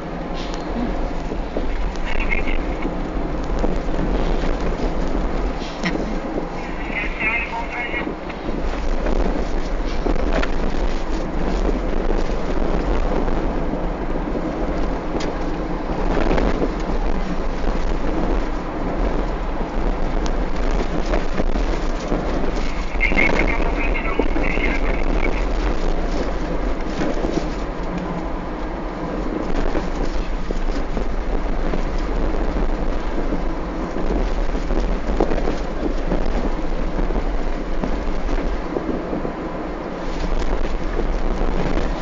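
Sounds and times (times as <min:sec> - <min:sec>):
road and wind noise: 0:00.0 - 0:42.0.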